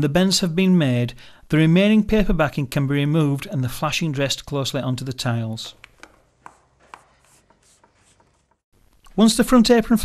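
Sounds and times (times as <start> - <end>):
hands rubbing flashing on tiles: 5.8 - 8.7.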